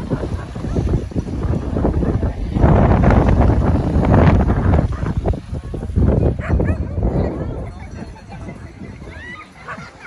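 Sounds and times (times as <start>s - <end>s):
people talking: 0.0s - 10.0s
dog barking and yipping: 6.4s - 7.0s, 9.6s - 10.0s.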